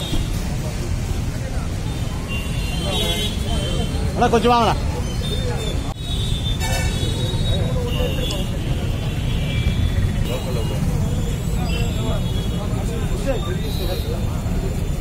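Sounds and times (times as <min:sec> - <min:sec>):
road traffic rumble: 0:00.0 - 0:15.0
men talking: 0:00.4 - 0:06.0, 0:06.8 - 0:15.0.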